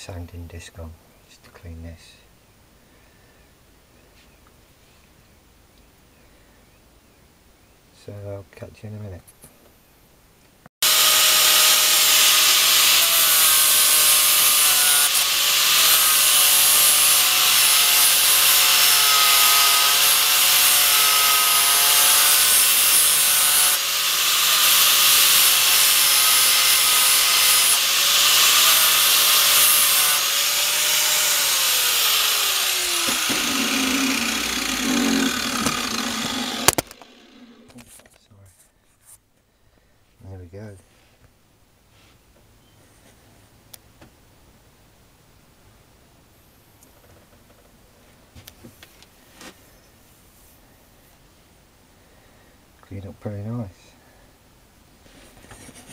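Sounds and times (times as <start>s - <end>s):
angle grinder grinding metal: 10.8s - 37.8s.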